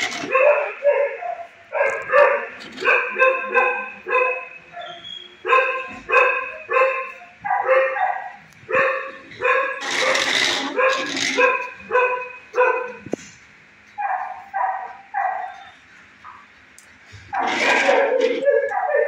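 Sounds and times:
dog barking: 0.0s - 13.0s, 14.0s - 15.7s, 17.3s - 19.0s.

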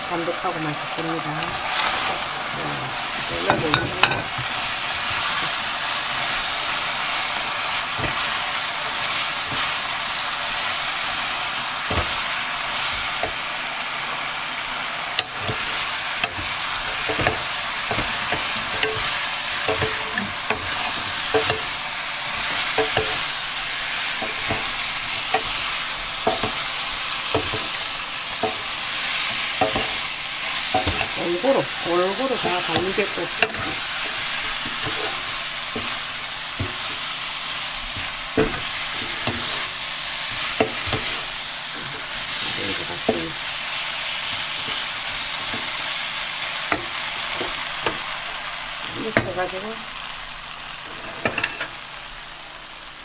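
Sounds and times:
food sizzling in a pan: 0.0s - 53.0s
spoon and spatula scraping pan: 1.4s - 2.4s, 3.1s - 13.4s, 15.1s - 46.0s, 50.9s - 51.8s.

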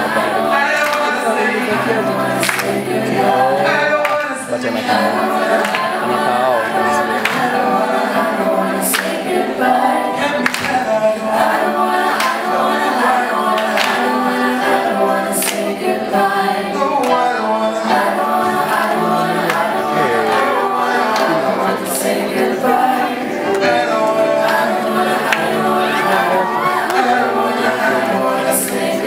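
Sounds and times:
voices singing unaccompanied: 0.0s - 29.0s.

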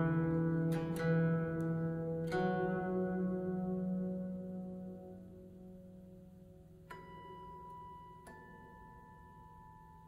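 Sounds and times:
zither plucked notes ringing: 0.0s - 10.0s.

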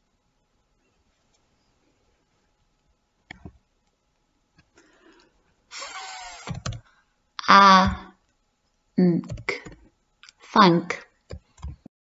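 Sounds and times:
keyboard clicks: 6.5s - 6.9s, 9.2s - 9.8s
woman sounding out th: 7.4s - 8.1s.

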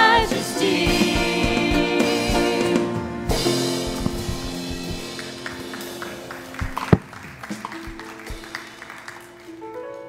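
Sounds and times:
drum taps: 3.3s - 8.7s.

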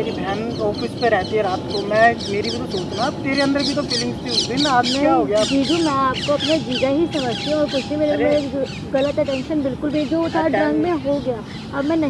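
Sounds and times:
man talking: 0.0s - 6.6s, 7.9s - 8.7s
birds chirping and squawking: 0.0s - 12.0s.

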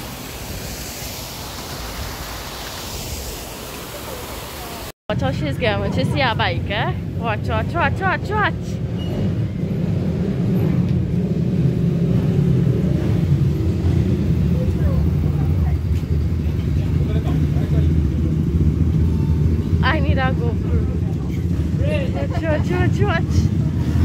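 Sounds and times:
motorcycle engine low rumble: 8.8s - 24.0s.

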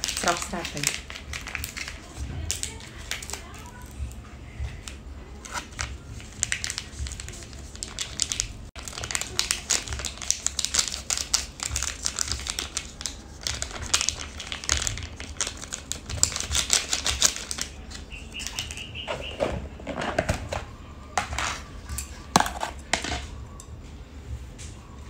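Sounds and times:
foil sachet crinkling: 0.0s - 3.9s, 5.4s - 18.8s
powder ticking on noodles: 6.4s - 18.9s.

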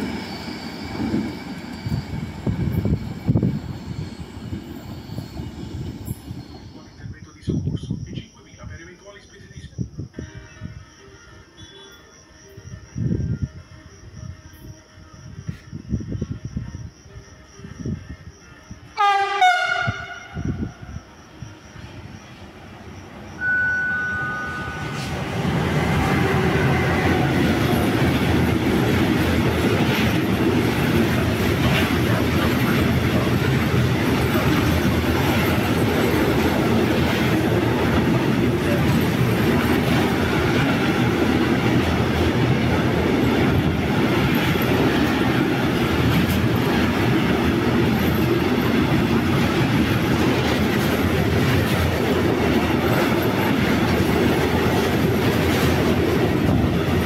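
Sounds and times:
high wheel squeal: 0.0s - 7.1s, 23.4s - 28.2s
train wheels rumbling on rails: 0.0s - 9.7s, 19.0s - 57.0s.

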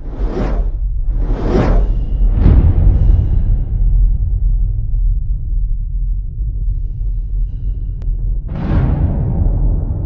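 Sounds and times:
whooshes: 0.0s - 4.2s
deep low rumble: 0.0s - 10.0s.

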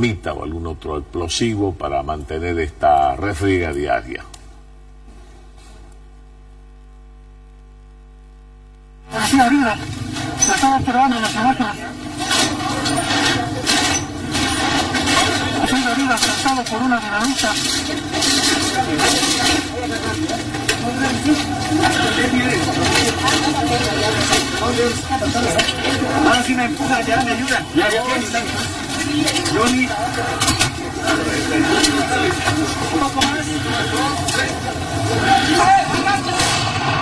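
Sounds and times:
engine running: 9.1s - 37.0s
people talking over one another: 9.1s - 37.0s
people rustling and scraping: 9.2s - 36.4s.

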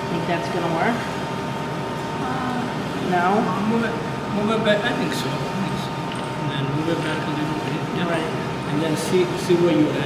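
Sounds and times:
mechanical hum: 0.0s - 10.0s.

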